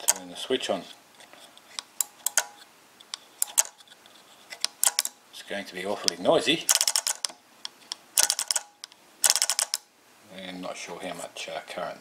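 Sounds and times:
microswitch lever clicking rapidly: 4.7s - 5.1s, 6.7s - 7.3s, 8.2s - 9.8s.

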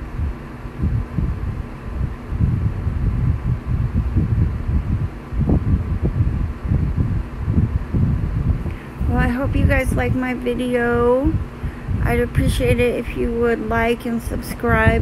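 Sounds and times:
faint steady hum: 0.0s - 15.0s
low rumbling and thumping: 0.0s - 15.0s.

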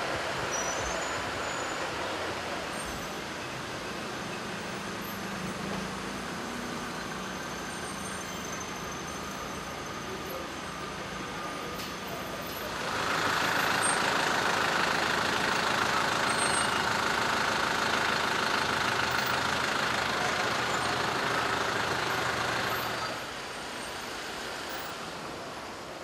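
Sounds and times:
motor vehicle running: 0.0s - 23.4s.

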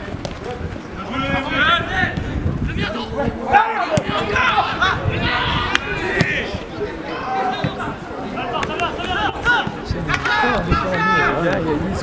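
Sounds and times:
men shouting and calling out: 0.5s - 12.0s.

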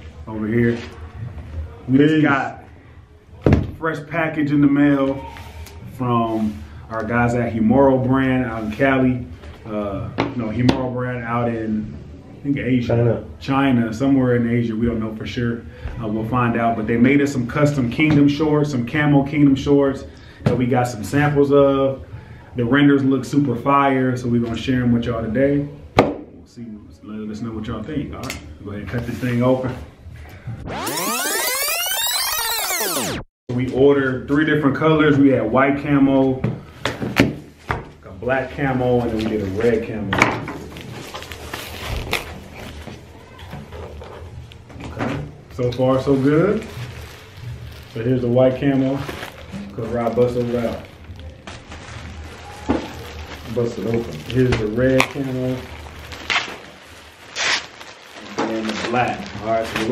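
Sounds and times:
synth tones sweeping upward: 30.6s - 33.3s
plastic bag crinkling: 40.7s - 43.1s, 45.9s - 59.9s.

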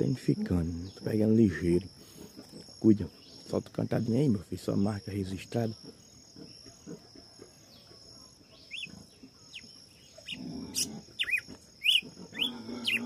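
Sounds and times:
cricket trill: 0.0s - 13.0s.

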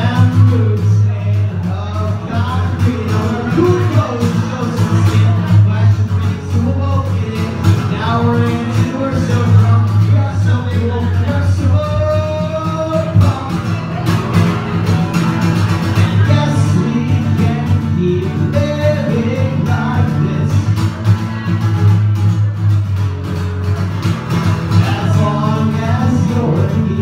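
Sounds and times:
man singing: 0.0s - 22.6s, 24.2s - 27.0s
strummed acoustic guitar: 0.0s - 27.0s.

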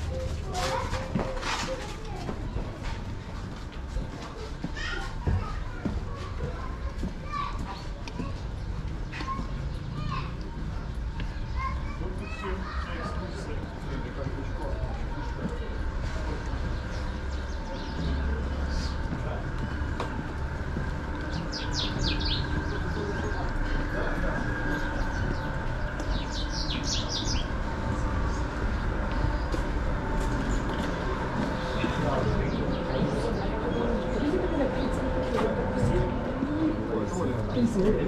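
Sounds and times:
faint distant voices: 0.0s - 38.0s
low street rumble: 0.0s - 38.0s
rapid high bird chirping: 26.1s - 27.6s.

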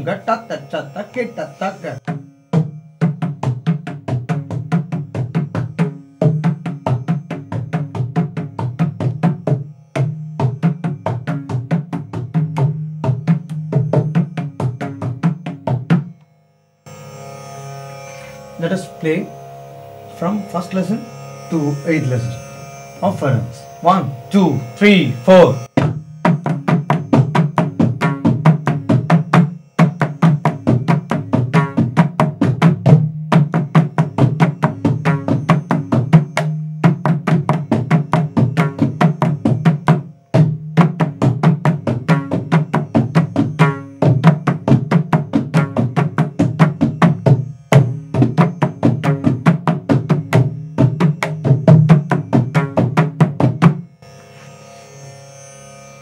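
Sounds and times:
barrel drum played by hand: 2.0s - 16.2s, 25.7s - 53.9s.

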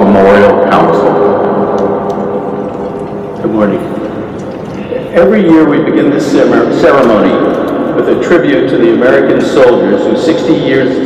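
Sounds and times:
man's voice: 0.0s - 1.4s, 3.4s - 3.9s, 4.9s - 7.4s, 8.0s - 11.0s.

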